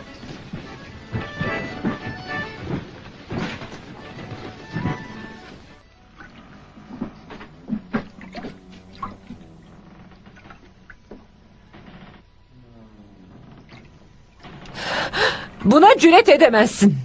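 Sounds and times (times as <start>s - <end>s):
footsteps on wooden boards: 0.0s - 5.8s
faint low hum: 0.0s - 17.0s.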